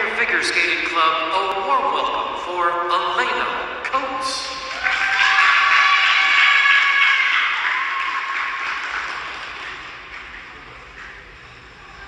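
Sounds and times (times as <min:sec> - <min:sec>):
audience applauding and cheering: 0:04.6 - 0:11.1.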